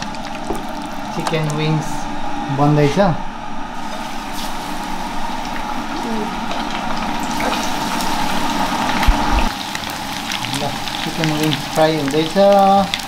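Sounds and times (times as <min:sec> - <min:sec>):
chicken frying in hot oil: 0:00.0 - 0:02.0, 0:03.8 - 0:13.0.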